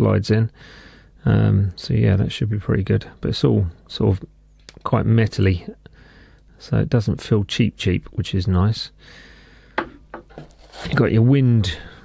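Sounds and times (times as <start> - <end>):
light knocks: 9.8 - 10.5
rustling in cardboard box: 10.3 - 11.0.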